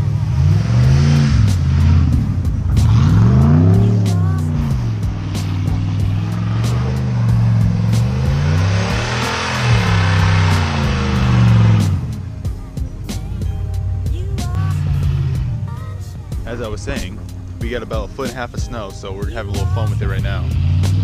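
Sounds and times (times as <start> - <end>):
tires spinning in snow: 0.0 - 12.4
truck engine revving: 0.0 - 21.0.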